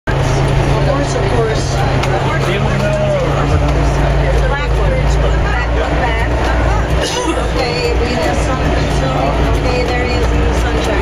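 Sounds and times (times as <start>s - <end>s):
passengers chattering: 0.1s - 11.0s
truck engine droning: 0.1s - 11.0s.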